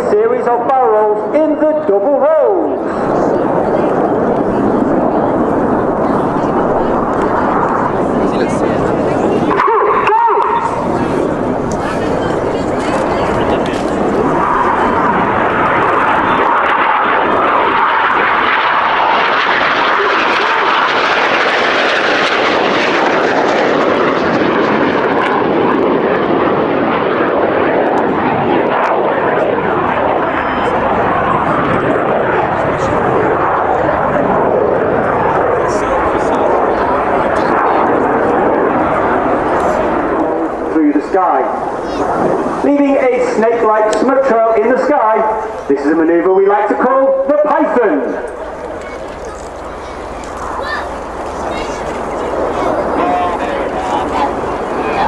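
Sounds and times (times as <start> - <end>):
jet engine noise: 0.0 - 55.0.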